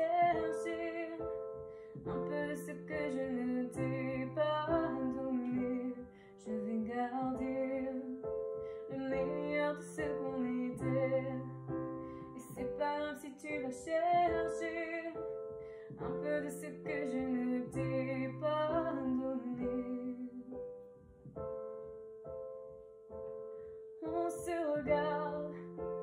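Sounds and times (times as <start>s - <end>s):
woman singing with vibrato: 0.0s - 1.3s, 2.1s - 8.2s, 8.9s - 11.6s, 12.4s - 15.2s, 16.0s - 20.6s, 24.0s - 25.6s
electronic keyboard chords: 0.0s - 6.6s, 7.2s - 26.0s.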